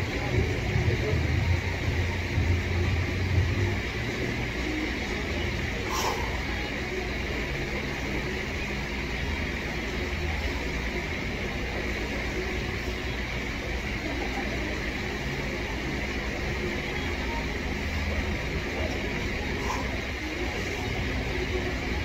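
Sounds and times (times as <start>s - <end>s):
low rumble with hiss: 0.0s - 22.0s.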